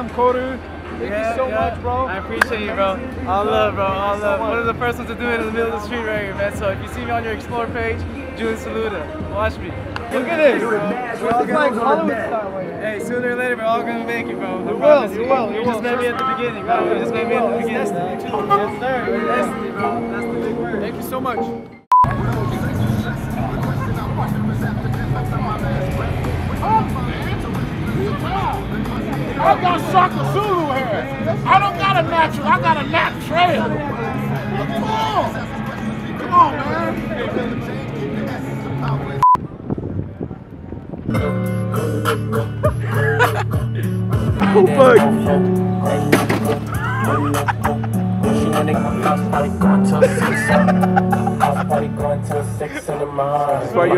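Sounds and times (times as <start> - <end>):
crowd chatter: 0.0 - 53.9
traffic hum: 0.0 - 53.9
hip-hop music: 1.2 - 39.2, 41.1 - 53.9
song playing: 1.6 - 39.4, 41.1 - 53.9
test-tone beep: 21.5 - 22.1, 39.2 - 39.4.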